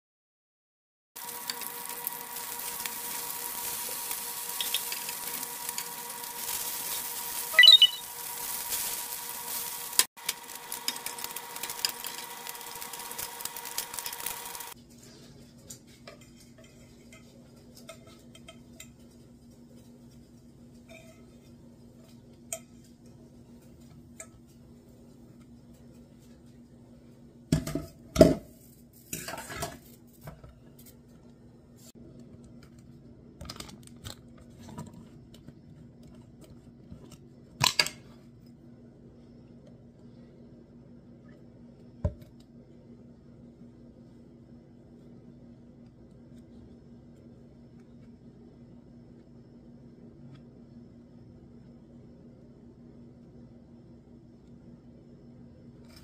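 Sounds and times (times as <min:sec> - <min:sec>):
bacon sizzling and crackling: 0:01.2 - 0:14.8
faint steady hum: 0:14.0 - 0:56.0.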